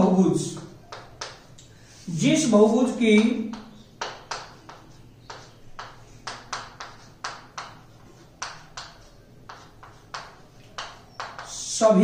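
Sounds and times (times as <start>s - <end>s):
chalk tapping and scraping: 0.1s - 11.8s.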